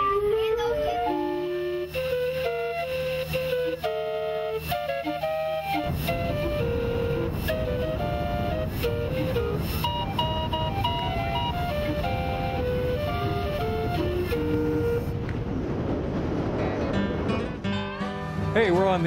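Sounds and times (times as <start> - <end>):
calliope melody: 0.0 - 15.3
steady low rumble: 5.9 - 17.8.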